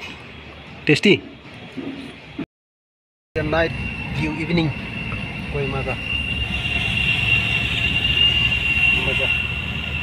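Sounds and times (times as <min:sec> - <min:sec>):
high-pitched whine: 0:03.4 - 0:09.0.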